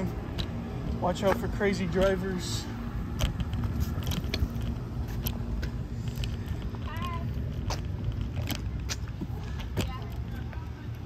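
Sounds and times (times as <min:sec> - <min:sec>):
scooter wheels rolling on concrete: 0:00.0 - 0:11.0
sharp clicks and rattles: 0:00.0 - 0:11.0.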